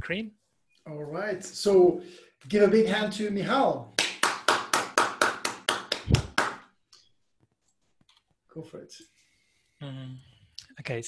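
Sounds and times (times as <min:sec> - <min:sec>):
person clapping hands: 0:04.0 - 0:06.7.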